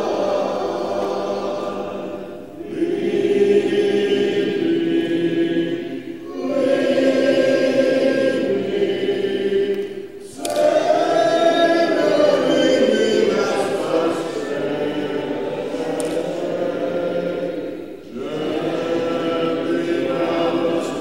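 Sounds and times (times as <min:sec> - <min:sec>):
congregation singing a hymn: 0:00.0 - 0:21.0.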